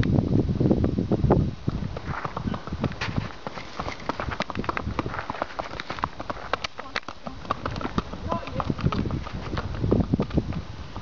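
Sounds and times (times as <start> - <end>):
horse hooves on asphalt: 0.0 - 11.0.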